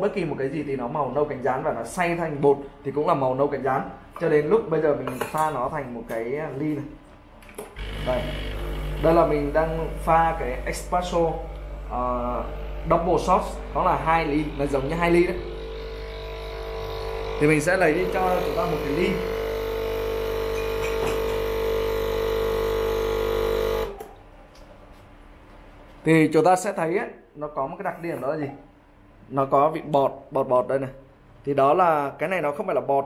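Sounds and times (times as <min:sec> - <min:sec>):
espresso machine pump humming: 0:07.6 - 0:24.1.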